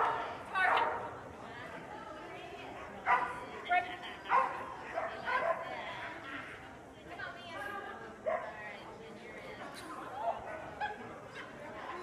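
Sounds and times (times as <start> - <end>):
dog barking: 3.1 - 3.4.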